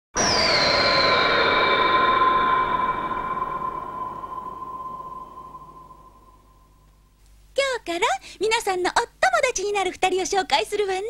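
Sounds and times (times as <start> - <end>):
electronic title sting tone: 0.2 - 6.7.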